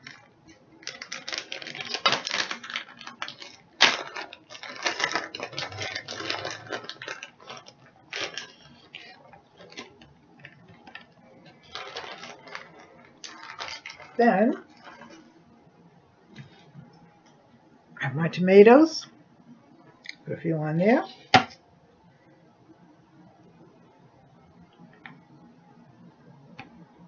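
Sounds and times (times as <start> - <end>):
plastic bag crinkling: 0.0 - 15.4.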